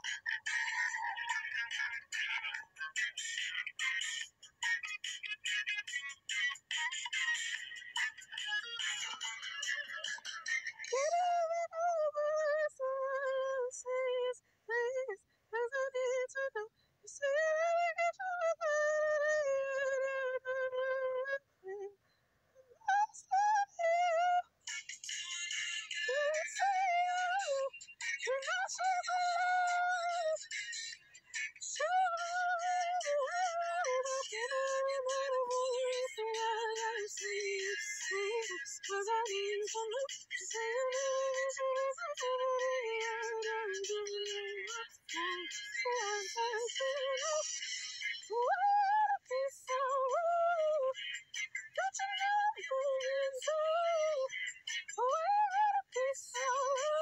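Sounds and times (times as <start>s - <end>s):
woman singing vocal warm-ups: 10.8s - 22.0s, 26.1s - 47.5s, 48.3s - 57.0s
high voice singing warm-up notes: 22.8s - 47.5s.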